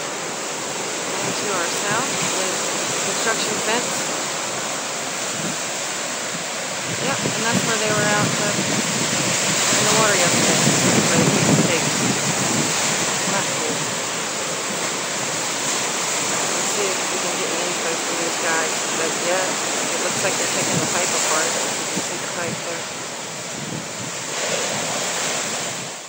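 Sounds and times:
surf washing onto beach: 0.0s - 26.0s
wind on microphone: 0.0s - 26.0s.

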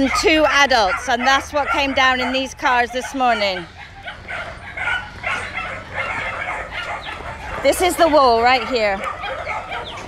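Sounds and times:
dogs barking: 0.0s - 10.0s
truck engine running: 3.6s - 10.0s.

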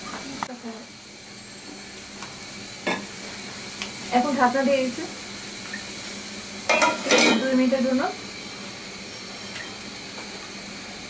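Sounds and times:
curry sizzling in a pan: 0.0s - 11.0s.

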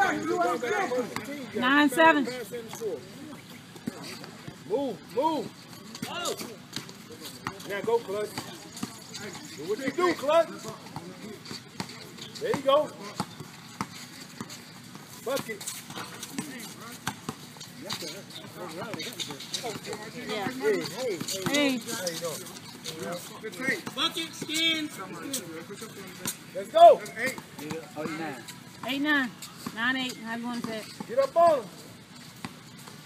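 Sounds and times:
basketball bouncing on hard court: 11.7s - 19.0s, 19.6s - 21.9s.

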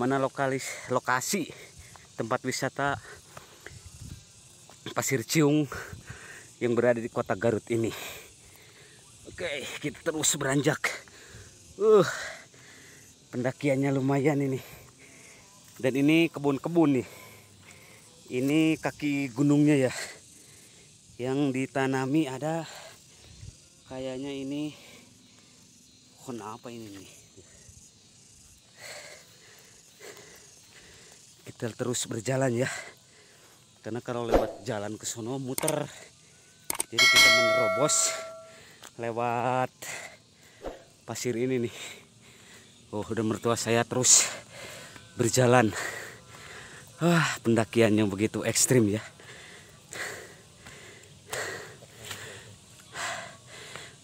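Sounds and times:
faint outdoor background: 0.0s - 54.0s
man breathing heavily: 1.6s - 2.2s, 5.7s - 6.6s, 7.9s - 9.1s, 11.0s - 13.2s, 14.6s - 15.6s, 17.0s - 18.2s, 28.6s - 31.4s, 32.6s - 33.7s, 39.8s - 41.0s, 41.7s - 42.8s, 44.2s - 47.3s, 49.0s - 54.0s.

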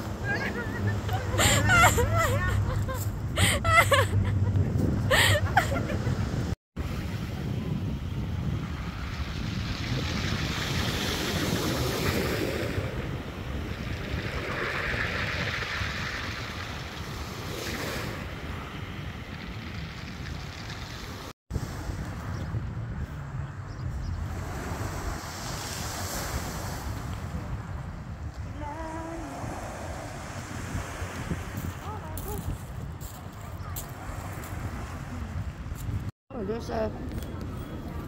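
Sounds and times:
wind rumbling on microphone: 0.0s - 38.0s.

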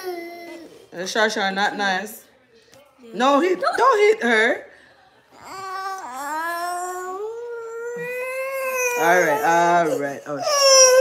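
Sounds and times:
toddler crying wail: 5.4s - 11.0s.

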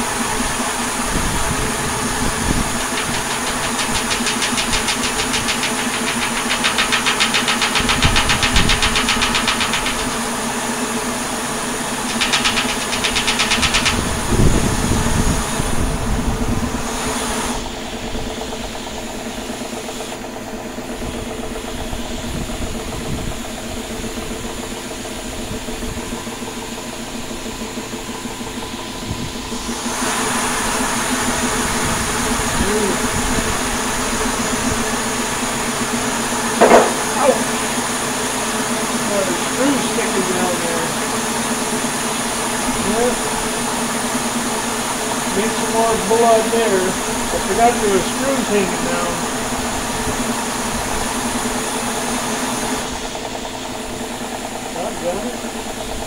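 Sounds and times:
spinning turbine hum: 0.0s - 56.0s
fast fine rattle: 0.3s - 56.0s
rushing hiss: 1.4s - 15.6s.

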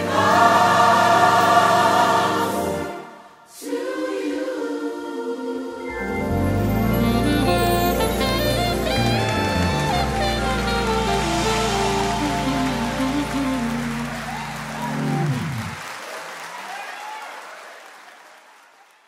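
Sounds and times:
gospel band playing: 0.0s - 3.2s, 5.8s - 15.8s
hiss-like wash: 10.0s - 14.1s.

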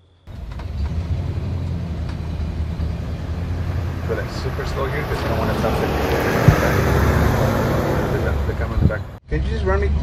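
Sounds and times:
road noise: 0.0s - 10.0s
truck engine running: 0.3s - 9.2s.

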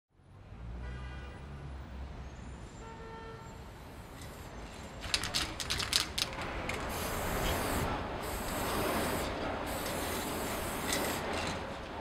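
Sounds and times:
traffic rumble: 3.4s - 12.0s.

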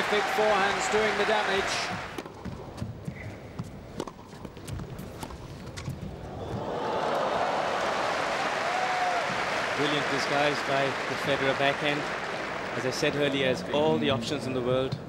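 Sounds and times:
crowd applause and cheering: 0.0s - 2.2s, 6.3s - 13.7s.

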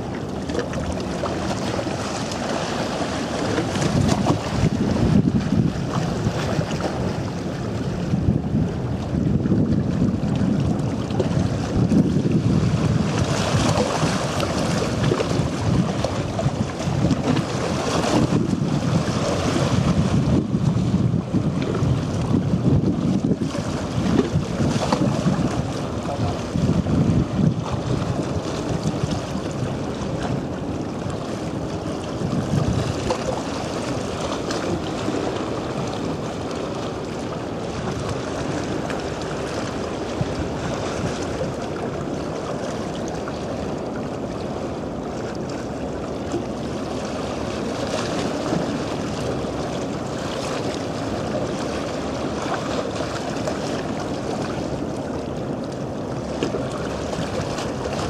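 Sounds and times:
water rushing past a boat: 0.0s - 58.0s
wind on microphone: 0.0s - 58.0s.

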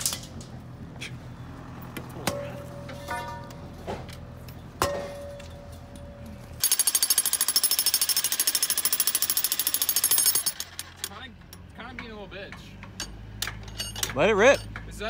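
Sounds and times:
jackhammer pounding concrete: 6.6s - 11.2s.

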